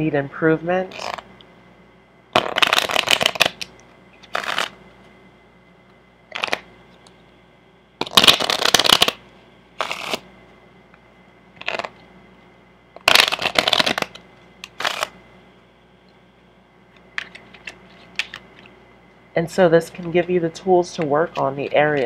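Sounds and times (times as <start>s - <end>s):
playing cards shuffling: 2.4s - 4.8s, 8.0s - 9.2s, 9.8s - 10.2s, 11.6s - 12.0s, 13.0s - 15.1s.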